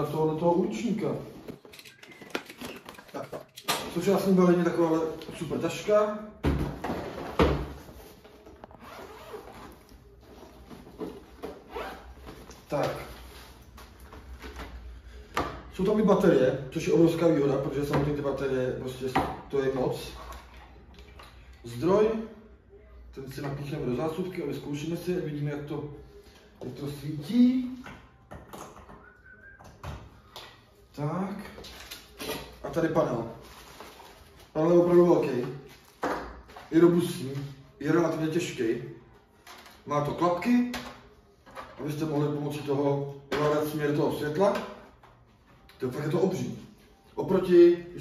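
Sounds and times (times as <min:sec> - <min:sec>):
zipper unzipping: 0:08.8 - 0:09.8.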